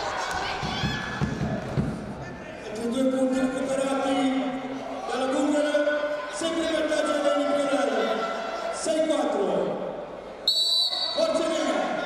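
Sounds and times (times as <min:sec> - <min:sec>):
voices in a hall: 0:00.0 - 0:12.0
referee whistle blast: 0:10.4 - 0:11.3.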